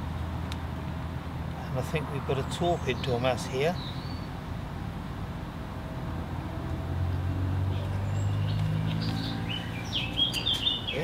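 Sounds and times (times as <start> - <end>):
low engine hum: 0.0 - 11.0.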